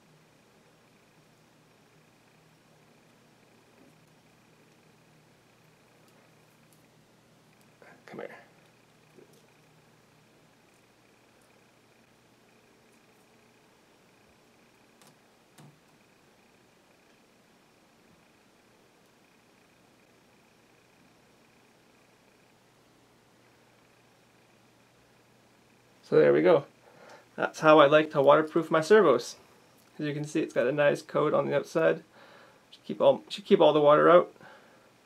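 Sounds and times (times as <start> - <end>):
faint room hiss: 0.0 - 35.0.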